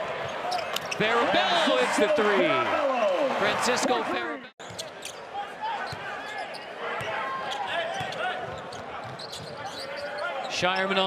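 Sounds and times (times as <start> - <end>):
murmur of arena crowd: 0.0 - 11.0.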